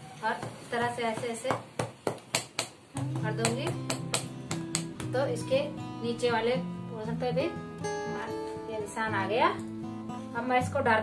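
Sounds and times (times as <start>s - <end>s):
instrumental background music: 2.7s - 11.0s.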